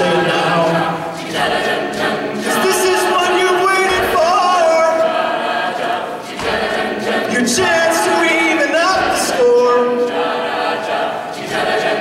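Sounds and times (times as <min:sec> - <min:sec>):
a cappella group singing: 0:00.0 - 0:12.0.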